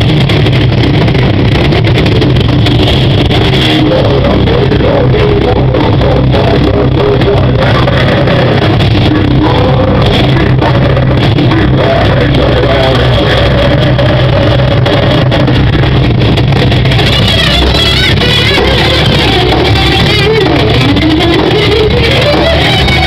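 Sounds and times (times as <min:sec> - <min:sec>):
bass guitar: 0:00.0 - 0:23.0
distorted electric guitars: 0:00.0 - 0:23.0
drums: 0:00.0 - 0:23.0
singer's vocals: 0:03.5 - 0:15.8, 0:17.0 - 0:23.0.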